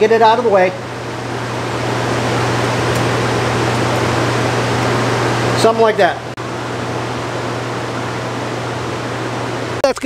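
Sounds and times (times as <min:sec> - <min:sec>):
fan running with low hum: 0:00.0 - 0:10.0.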